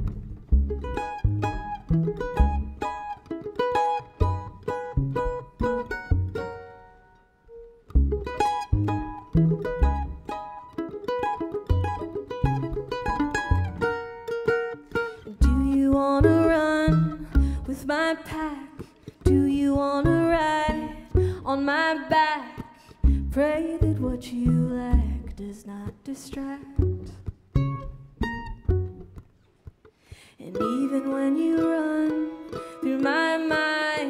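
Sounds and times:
upright bass notes: 0.0s - 3.2s, 3.8s - 6.6s, 7.6s - 10.6s, 11.2s - 14.3s, 15.4s - 17.9s, 23.0s - 25.5s, 26.8s - 29.2s
plucked mandolin notes: 0.0s - 34.0s.

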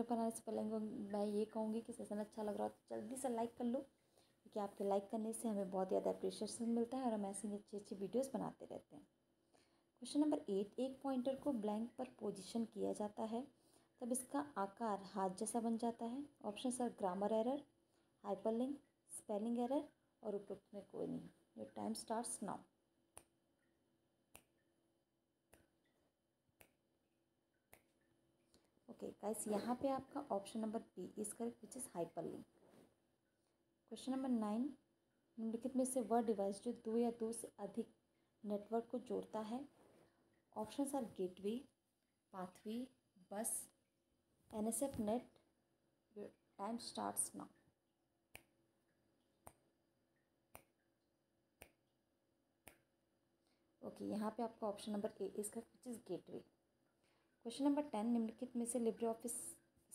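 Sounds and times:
faint timer ticks: 11.7s - 24.7s.

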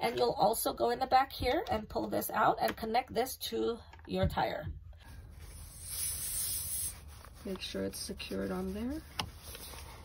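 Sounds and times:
soft high air hiss: 5.2s - 8.7s.

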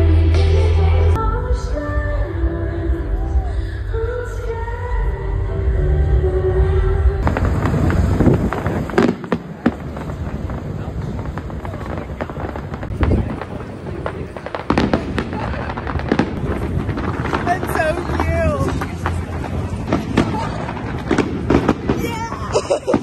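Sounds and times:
music: 0.0s - 7.3s
fireworks crackling and banging: 7.2s - 23.0s.

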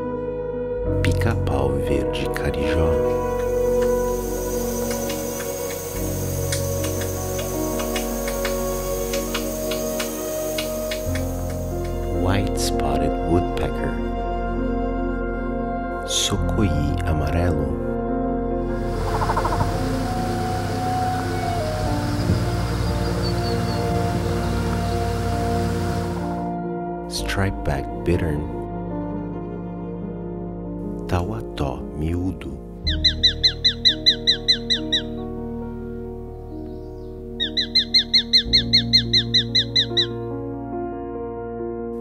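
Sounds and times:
ambient background music: 0.0s - 42.0s
bittern calling: 3.0s - 12.0s, 18.8s - 26.3s, 32.9s - 35.2s, 36.7s - 40.2s.

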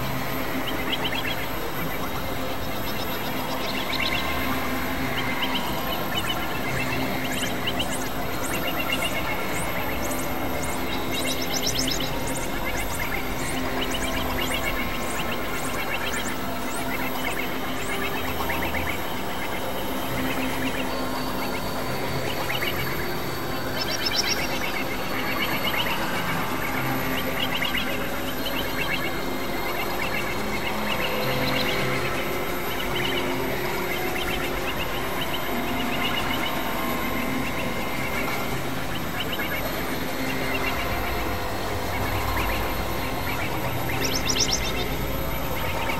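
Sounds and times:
held synthesizer drone tones: 0.0s - 45.9s
high chirping and warbling sounds: 39.1s - 45.9s.

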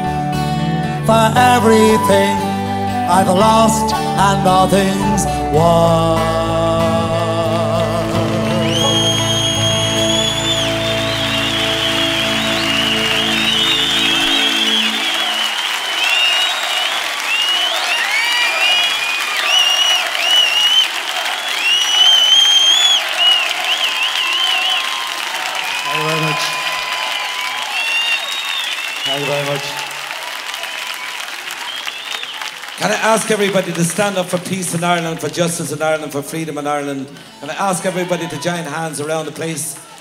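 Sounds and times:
man's voice: 0.6s - 9.3s, 25.9s - 26.6s, 32.8s - 40.0s
audience applauding and cheering: 7.2s - 40.0s
shrill sliding whistles: 8.6s - 29.8s, 30.6s - 32.6s
band chord ringing: 8.7s - 15.6s.

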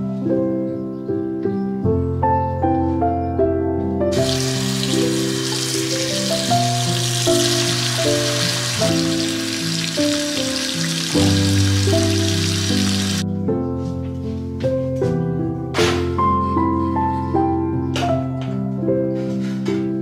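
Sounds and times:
soft piano music: 0.0s - 20.0s
water pouring into metal pot: 4.1s - 13.2s.

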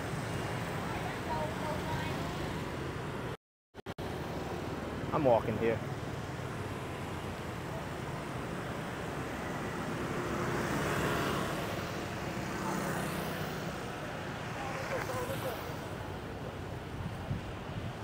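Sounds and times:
motorbikes and scooters passing: 0.0s - 3.3s, 4.1s - 18.0s.

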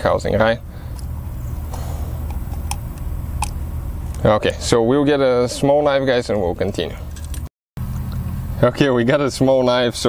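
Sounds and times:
low rumble: 0.6s - 5.2s.

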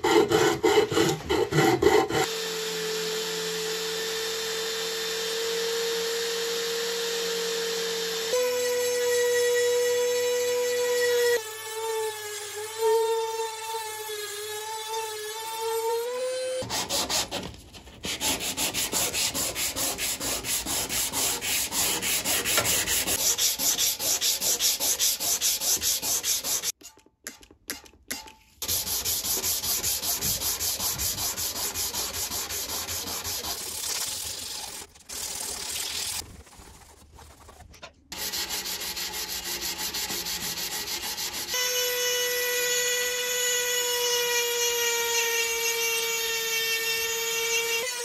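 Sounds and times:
sandpaper rubbing on metal: 16.6s - 26.8s, 28.6s - 41.5s
spray bottle squirts: 33.5s - 36.6s.

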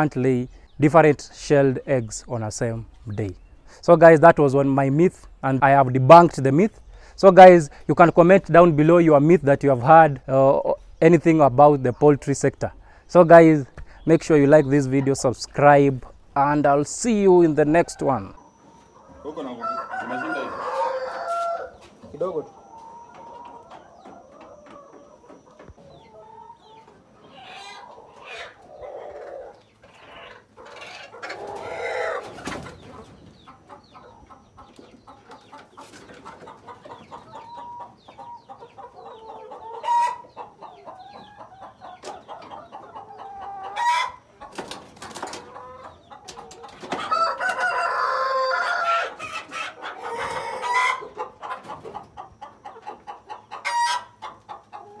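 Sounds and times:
chickens clucking: 0.0s - 55.0s.

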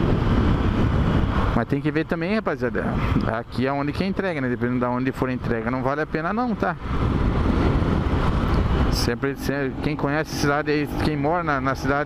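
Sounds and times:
road noise: 0.0s - 12.0s
wind rushing over microphone: 0.0s - 12.0s
motorcycle engine: 3.6s - 12.0s.

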